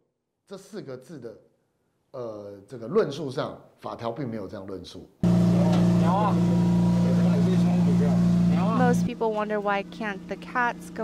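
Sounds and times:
loud low machine hum: 0:05.2 - 0:11.0.

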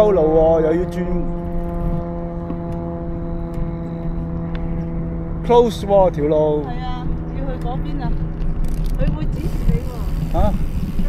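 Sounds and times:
droning hum of held tones: 0:00.0 - 0:11.0
low wind rumble: 0:00.0 - 0:11.0.

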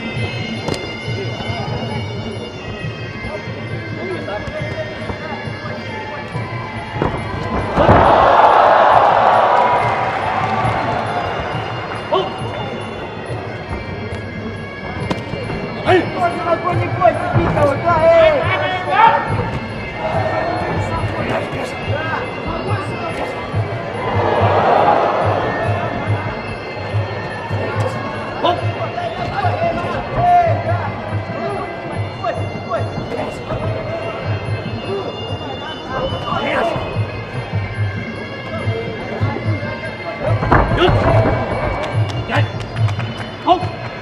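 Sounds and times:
crowd noise: 0:00.0 - 0:44.0
voices: 0:00.0 - 0:44.0.

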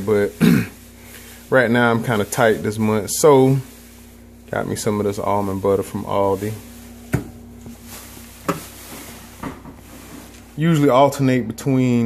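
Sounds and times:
grocery handling noise: 0:00.0 - 0:11.4
knocks on a counter: 0:07.1 - 0:07.3.

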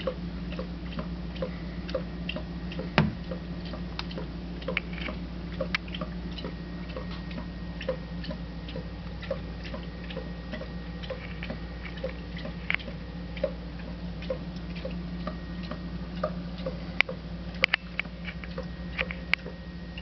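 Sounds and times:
soft ticking: 0:00.0 - 0:20.0
steady low hum: 0:00.0 - 0:20.0.

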